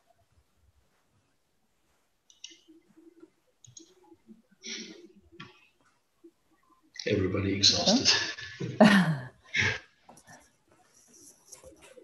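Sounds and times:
faint microphone clicks: 2.3s - 4.1s.

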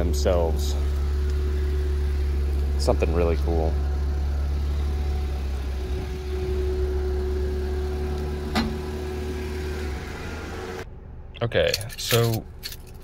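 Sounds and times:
car running at low speed: 0.0s - 11.6s.

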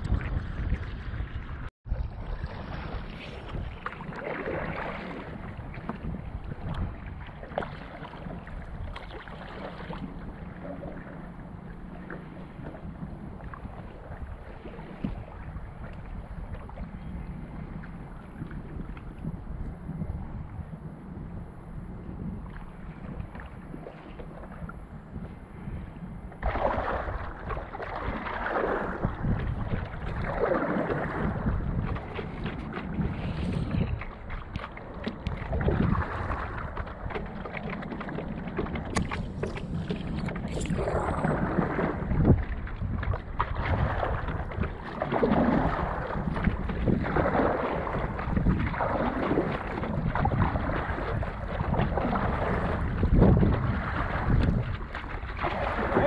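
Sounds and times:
paddle strokes through water: 0.0s - 56.0s
wind rumble on microphone: 0.0s - 56.0s.

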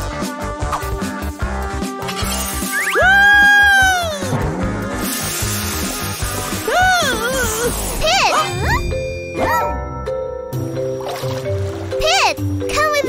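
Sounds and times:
background music: 0.0s - 13.0s
high-pitched shocked cry: 3.0s - 4.3s, 6.7s - 8.8s.

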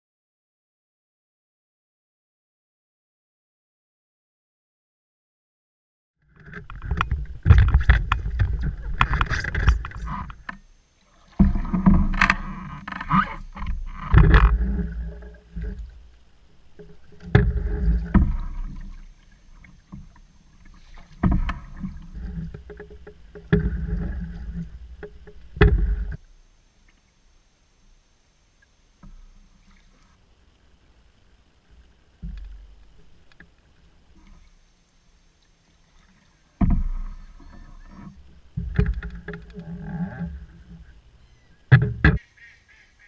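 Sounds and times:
water and paddle against hull: 6.2s - 43.0s.

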